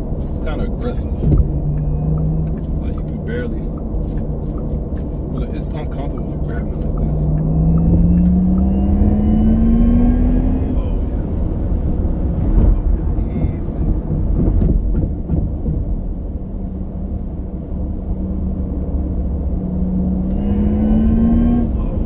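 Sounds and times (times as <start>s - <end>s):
road and tyre rumble: 0.0s - 22.0s
electric drive hum rising in pitch: 7.1s - 12.5s, 16.0s - 22.0s.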